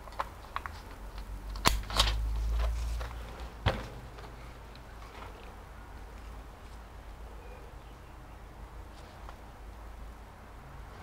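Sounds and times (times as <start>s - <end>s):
laptop handling rumble: 0.0s - 5.6s.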